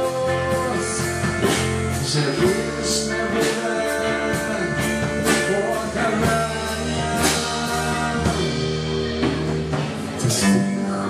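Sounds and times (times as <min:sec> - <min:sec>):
drum kit with cymbals: 0:00.0 - 0:11.0
electric bass: 0:00.0 - 0:11.0
electric guitars: 0:00.0 - 0:11.0.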